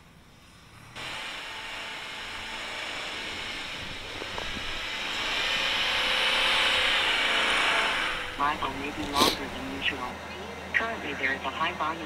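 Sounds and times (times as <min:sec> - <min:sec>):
low steady hum: 0:00.0 - 0:12.0
person talking: 0:08.4 - 0:10.2.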